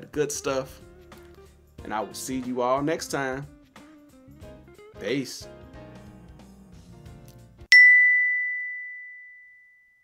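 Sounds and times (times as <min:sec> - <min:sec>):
bell-like chime ding: 0:07.7 - 0:10.0.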